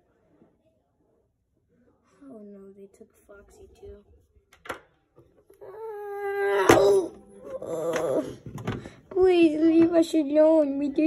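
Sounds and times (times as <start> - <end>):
child whimpering: 5.6 - 8.5.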